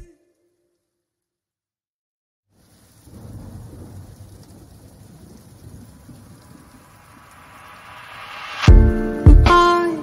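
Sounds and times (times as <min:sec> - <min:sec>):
rain and thunder rumble: 0:02.5 - 0:10.0.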